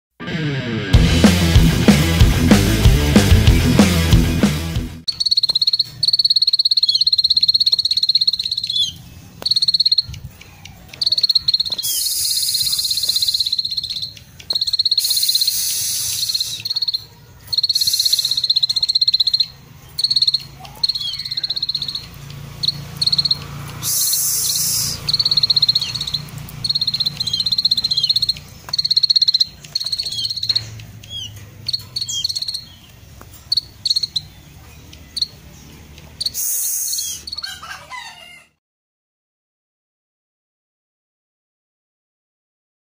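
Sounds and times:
bird singing high trills: 5.1 - 35.6, 36.2 - 37.6.

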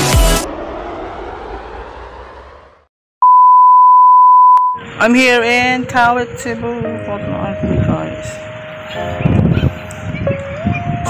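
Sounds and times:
electronic beep: 3.2 - 4.9.

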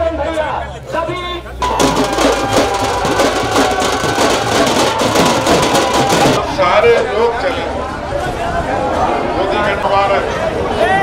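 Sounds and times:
group of drummers drumming fast: 1.6 - 6.4.

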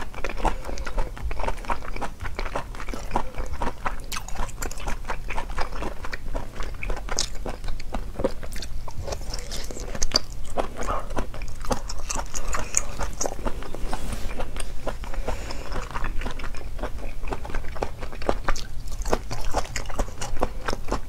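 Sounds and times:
wet crisp chewing: 0.0 - 21.0.

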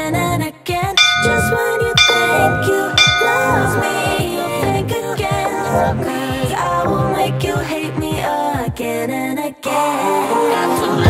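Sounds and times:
bell-like chime: 1.0 - 4.8.

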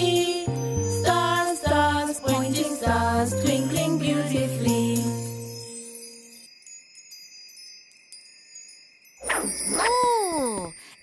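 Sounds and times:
tinkling sparkle chimes: 0.0 - 11.0.

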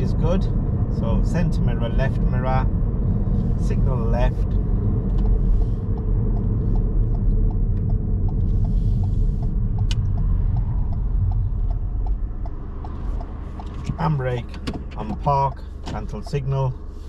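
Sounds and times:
car engine and road rumble: 0.0 - 17.0
turn indicator ticking: 0.0 - 17.0.

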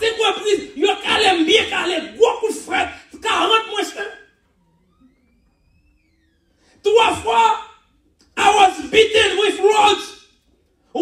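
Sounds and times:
man preaching: 0.0 - 4.3, 6.8 - 11.0
faint rising tone: 4.4 - 6.8.

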